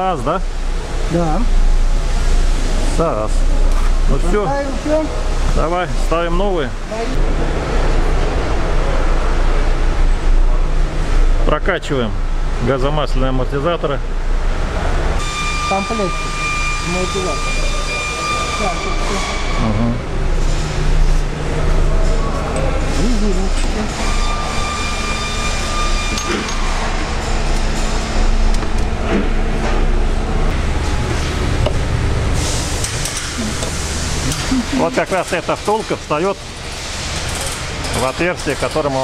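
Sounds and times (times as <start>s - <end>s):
high-pitched machine whine: 0.0s - 11.7s, 13.4s - 38.9s
steady hum: 0.0s - 37.9s
low voices: 19.1s - 20.1s, 33.2s - 35.8s.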